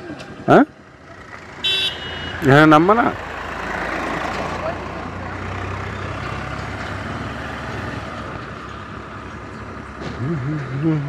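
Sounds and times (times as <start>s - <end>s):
road noise: 0.0s - 11.0s
tractor diesel engine passing: 0.8s - 11.0s.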